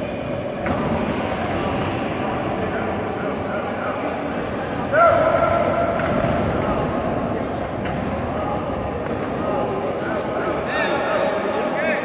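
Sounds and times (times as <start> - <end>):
din of voices in hall: 0.0 - 12.0.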